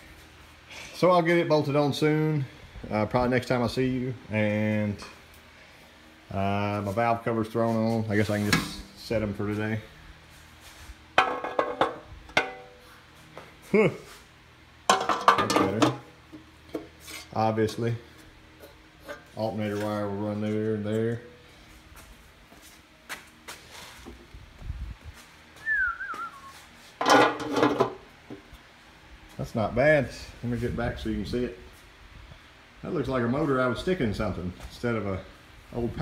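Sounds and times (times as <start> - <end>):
metal valve cover clattering: 14.9 - 16.1, 27.0 - 28.0
falling wavering whistle: 25.6 - 26.6.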